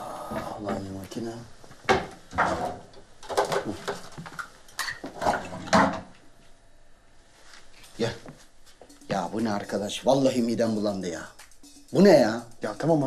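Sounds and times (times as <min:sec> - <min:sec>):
toiletries clattering on counter: 0:01.9 - 0:06.1.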